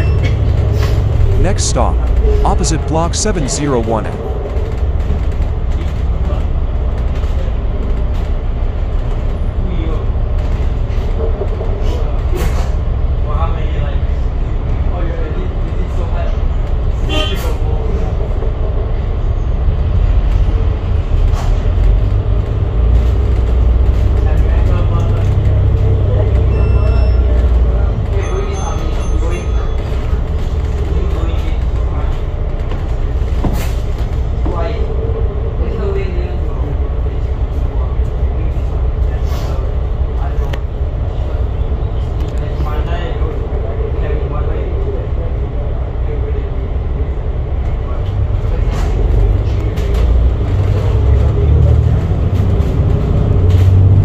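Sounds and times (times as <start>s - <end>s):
bus engine and road rumble: 0.0s - 54.0s.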